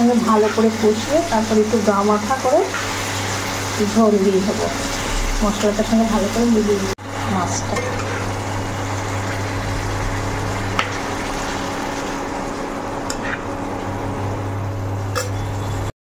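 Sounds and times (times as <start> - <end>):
curry sizzling in a wok: 0.0 - 15.9
low hum: 3.0 - 15.9.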